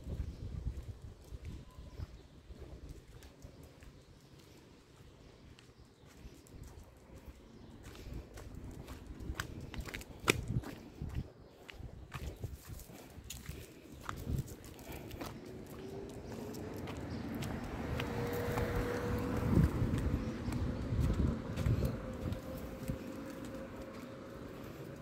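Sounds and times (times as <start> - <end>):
footsteps on pavement: 0.0 - 25.0.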